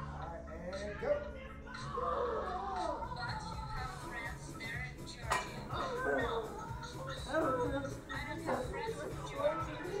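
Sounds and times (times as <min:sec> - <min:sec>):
background music: 0:00.0 - 0:10.0
voices talking: 0:00.0 - 0:10.0.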